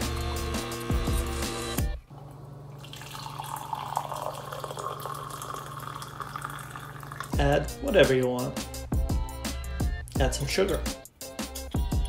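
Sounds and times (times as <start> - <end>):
background music: 0.0 - 2.0, 7.3 - 12.0
liquid trickling into cup: 2.2 - 7.4.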